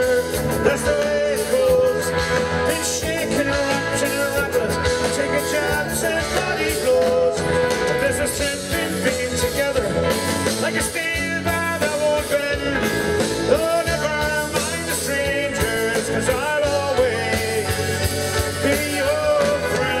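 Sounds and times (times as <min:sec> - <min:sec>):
drums: 0:00.0 - 0:20.0
strummed acoustic guitar: 0:00.0 - 0:20.0.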